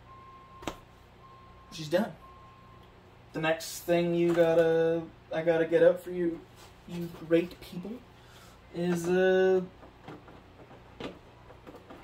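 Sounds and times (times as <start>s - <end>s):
plastic clicks and knocks: 8.9s - 12.0s.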